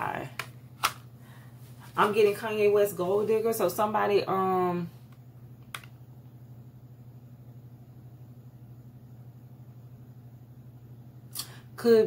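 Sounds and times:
low electrical hum with flutter: 0.0s - 12.0s.

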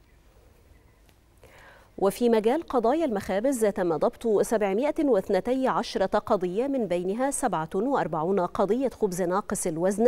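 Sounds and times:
soft breath-like noise: 1.4s - 2.0s.

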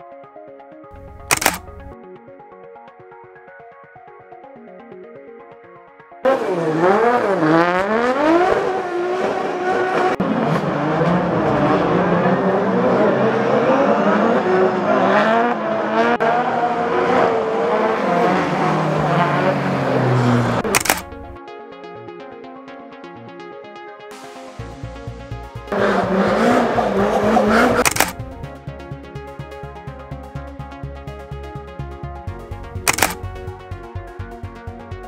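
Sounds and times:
car engines revving hard: 6.3s - 21.4s, 25.7s - 28.6s.

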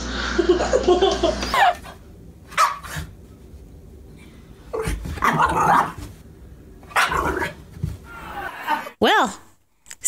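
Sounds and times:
dog barking: 2.6s - 3.0s.

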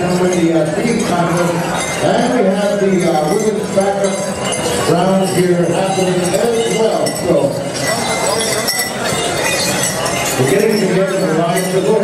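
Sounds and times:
public-address voice: 0.0s - 7.7s, 10.4s - 12.0s
metal bells jingling: 0.0s - 12.0s.

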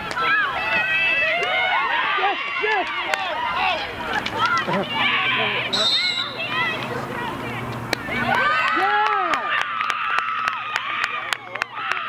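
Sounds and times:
spectators shouting and cheering: 0.0s - 12.0s
hockey sticks clacking: 4.1s - 4.9s.

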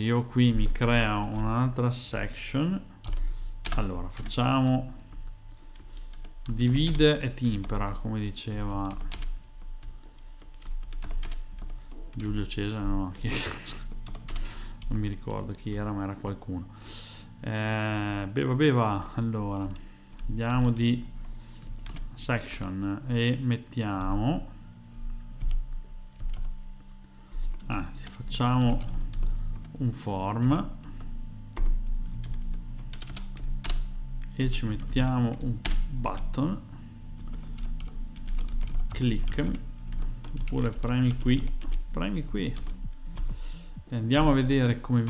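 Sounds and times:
computer keyboard typing: 0.0s - 1.5s, 3.0s - 15.9s, 19.2s - 22.2s, 25.3s - 36.4s, 37.0s - 43.4s.

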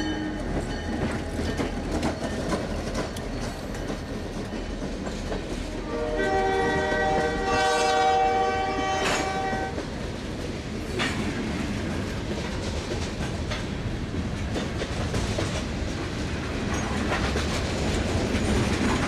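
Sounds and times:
train wheels rumbling: 0.0s - 19.0s
locomotive air horn: 5.8s - 9.8s.

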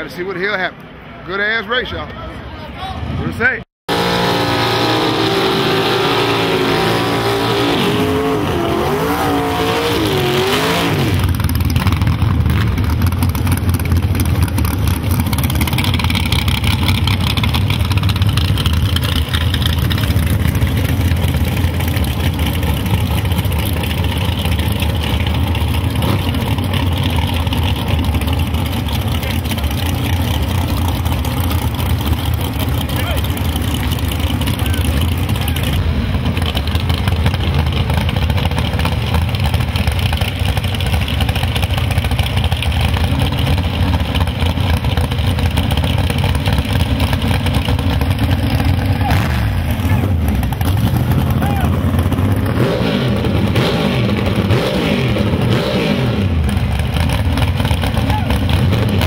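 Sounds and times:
drag car engine idling: 11.2s - 54.4s, 56.4s - 59.0s
crowd shouting and cheering: 51.1s - 52.0s, 57.9s - 58.6s.

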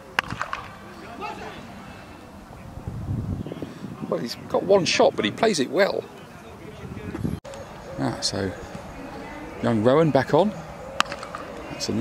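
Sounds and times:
cricket bat hitting ball: 0.2s - 0.8s, 11.0s - 11.5s.

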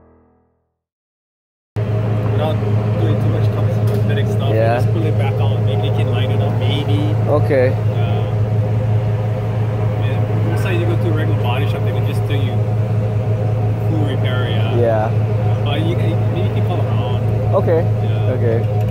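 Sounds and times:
truck engine idling: 1.8s - 18.9s.

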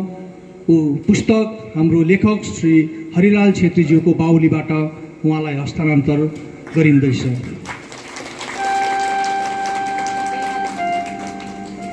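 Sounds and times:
steady held tone: 8.6s - 11.9s.

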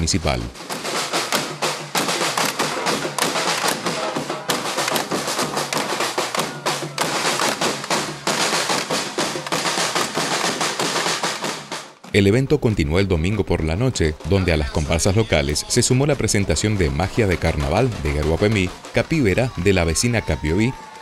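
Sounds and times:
samba percussion band: 0.6s - 12.0s, 14.2s - 20.7s.

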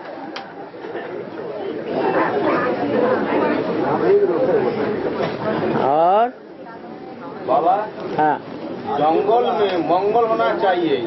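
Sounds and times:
people talking at once: 0.3s - 11.0s.

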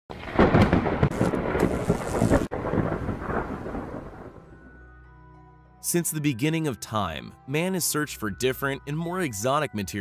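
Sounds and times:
loud rumbling crackling noise: 0.1s - 4.4s.

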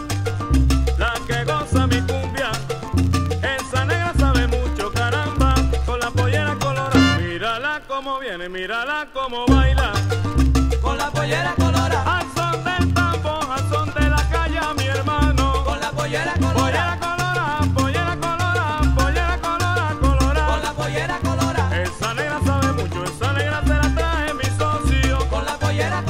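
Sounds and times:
percussion beat: 0.0s - 7.4s, 9.5s - 26.0s
bass: 0.0s - 7.6s, 9.5s - 26.0s
melodic lines from band: 1.0s - 7.6s.

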